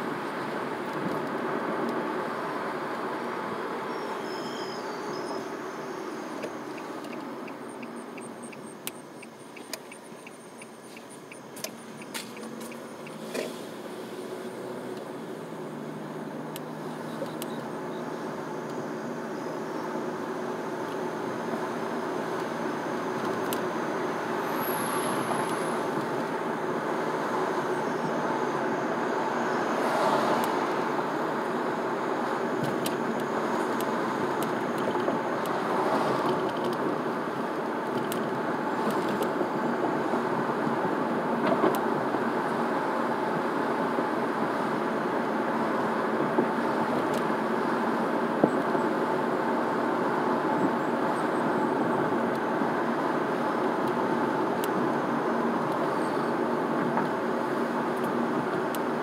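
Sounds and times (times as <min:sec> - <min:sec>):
car driving road noise: 0:00.0 - 0:59.0.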